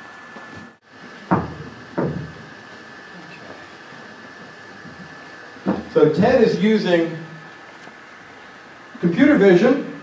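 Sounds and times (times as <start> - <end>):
faint high hum: 0.0 - 10.0
room noise: 0.0 - 10.0
sharp knocks: 1.3 - 2.4, 5.6 - 6.0.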